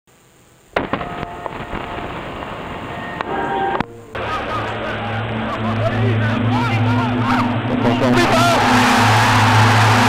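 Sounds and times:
television static hiss: 0.1 - 10.0.

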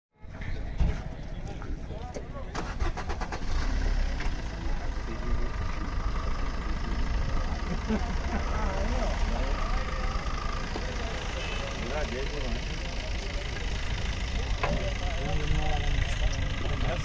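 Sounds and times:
background voices: 3.8 - 17.0.

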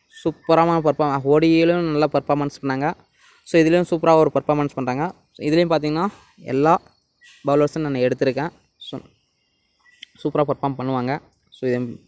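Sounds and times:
man speaking: 0.2 - 6.8, 10.0 - 12.0.

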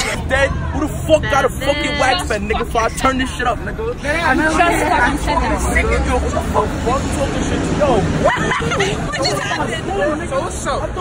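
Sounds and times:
babble of voices: 0.0 - 11.0.

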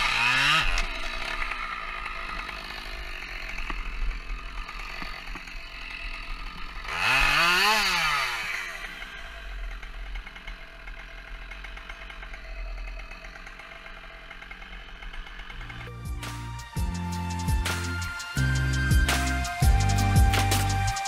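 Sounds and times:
chainsaw idling and revving: 0.0 - 21.0.

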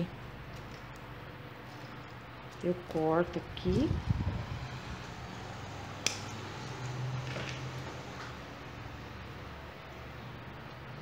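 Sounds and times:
thread snips cutting stem: 6.0 - 6.4.

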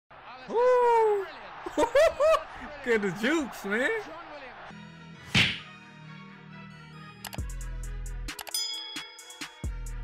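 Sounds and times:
whip-like hit effect: 5.3 - 5.6.

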